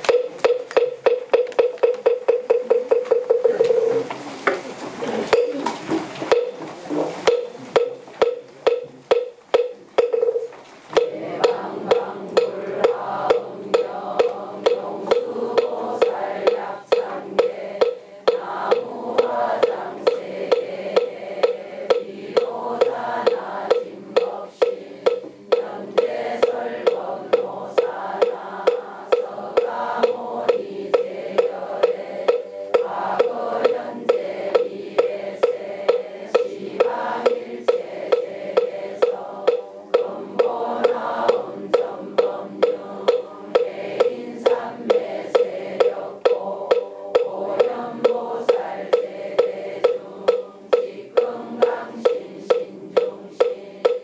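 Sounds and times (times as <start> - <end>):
wooden fish strikes: 0.0 - 4.7, 5.3 - 54.0
congregation chanting in unison: 11.0 - 54.0.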